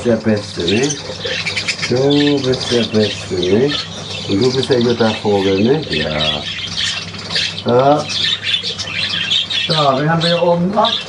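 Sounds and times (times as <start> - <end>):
budgerigars chattering and warbling: 0.0 - 11.0.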